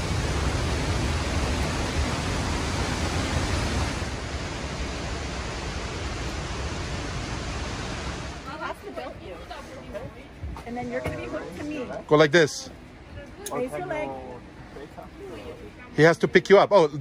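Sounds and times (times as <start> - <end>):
waterfall rushing: 0.0 - 8.9.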